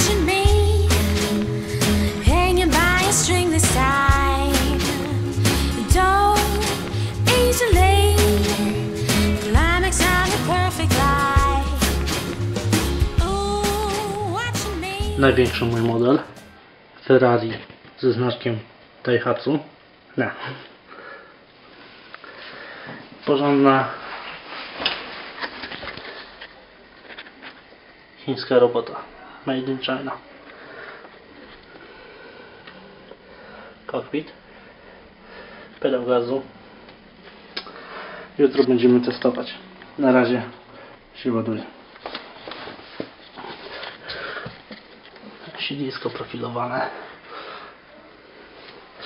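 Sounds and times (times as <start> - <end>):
breathy sniffing: 1.4 - 2.3, 6.7 - 7.3
man vocal sound: 12.8 - 16.4.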